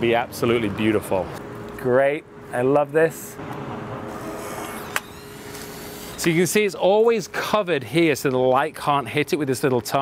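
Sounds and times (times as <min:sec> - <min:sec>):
instant camera motor whirring: 0:04.1 - 0:06.3.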